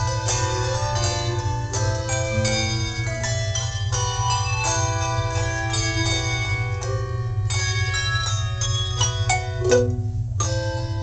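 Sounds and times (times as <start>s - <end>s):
handbell choir ringing chords: 0.0s - 11.0s.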